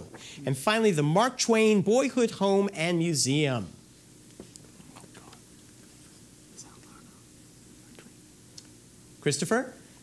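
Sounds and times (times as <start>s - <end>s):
people whispering: 4.7s - 8.2s.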